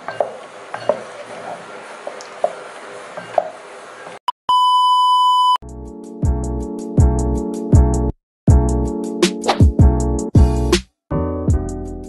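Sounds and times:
music: 0:05.6 - 0:12.0.

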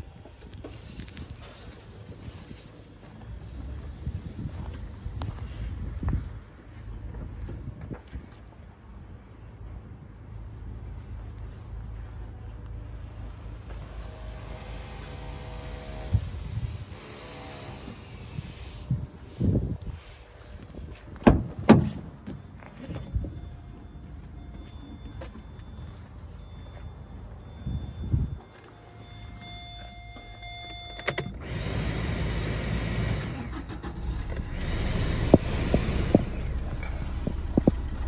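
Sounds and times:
faint steady ignition whine: 0:00.0 - 0:38.0
vehicle engine humming: 0:00.0 - 0:38.0
car engine idling: 0:23.4 - 0:38.0.

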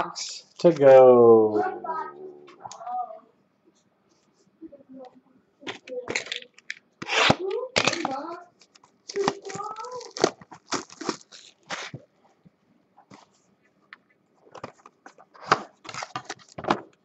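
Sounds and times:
cardboard box being torn open: 0:09.2 - 0:11.9.

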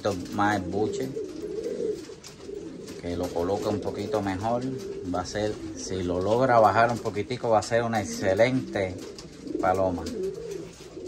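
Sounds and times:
pigeon cooing: 0:00.0 - 0:11.0.

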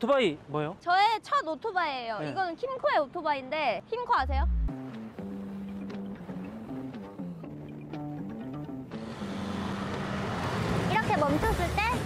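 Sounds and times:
light melody background music: 0:04.2 - 0:10.6
scooter riding in street traffic: 0:04.9 - 0:12.0.

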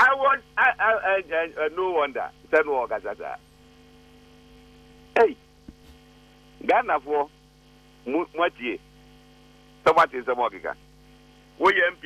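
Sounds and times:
man speaking over telephone line: 0:00.0 - 0:03.4, 0:05.1 - 0:05.4, 0:06.6 - 0:07.3, 0:08.0 - 0:08.8, 0:09.8 - 0:10.8, 0:11.6 - 0:12.0
electrical hum: 0:00.0 - 0:12.0.

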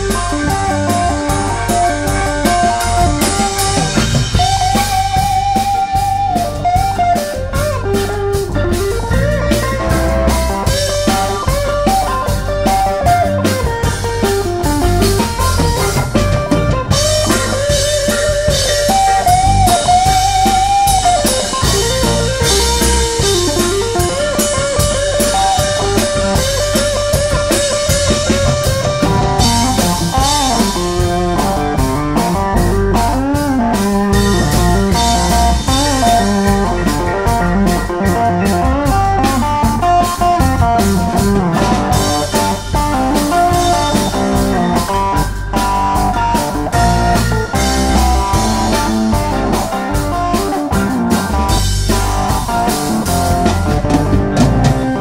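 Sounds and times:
drums: 0:00.0 - 0:55.0
electric guitar solo: 0:00.0 - 0:55.0.

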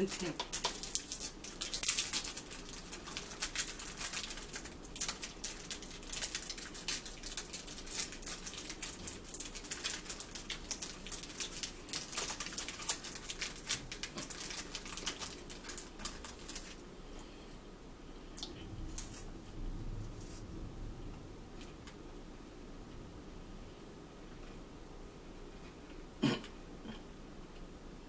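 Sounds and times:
plastic wrapper crinkling: 0:00.0 - 0:16.8, 0:18.4 - 0:19.3.

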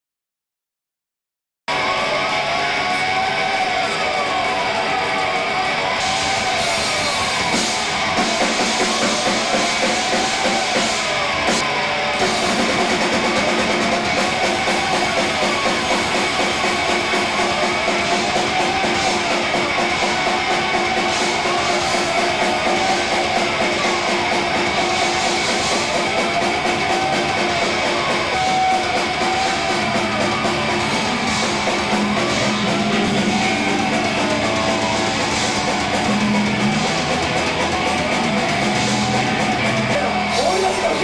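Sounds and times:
drum kit: 0:01.7 - 0:41.0
electric guitar swooping: 0:01.7 - 0:41.0
rock band playing live: 0:04.9 - 0:41.0.

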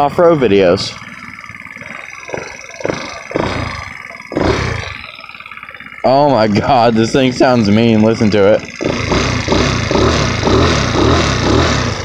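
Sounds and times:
scooter engine revving: 0:00.0 - 0:12.0.

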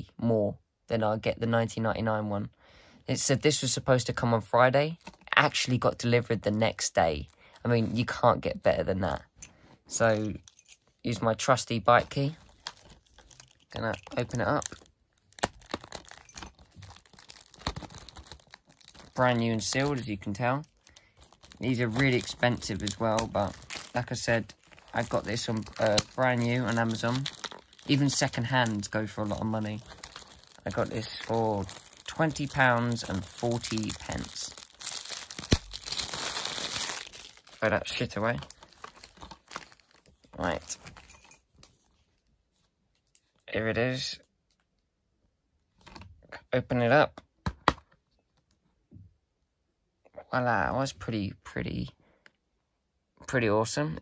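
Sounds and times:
plastic wrap crinkling: 0:11.9 - 0:41.7.

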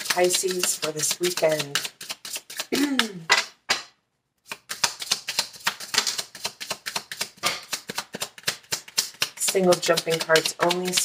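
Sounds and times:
cards being shuffled: 0:00.0 - 0:03.6, 0:04.4 - 0:11.0.

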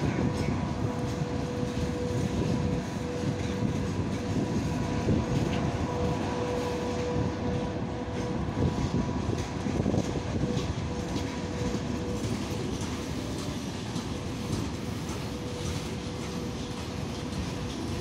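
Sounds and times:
train wheels rumbling and clattering: 0:00.0 - 0:18.0.

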